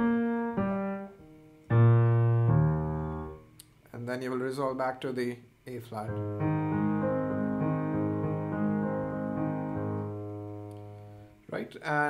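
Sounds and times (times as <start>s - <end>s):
piano descending arpeggio: 0.0s - 3.4s, 6.1s - 11.2s.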